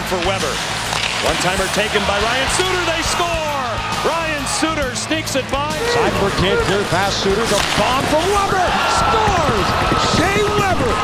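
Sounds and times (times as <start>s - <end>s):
background music: 0.0s - 11.0s
commentator calling goal: 1.2s - 11.0s.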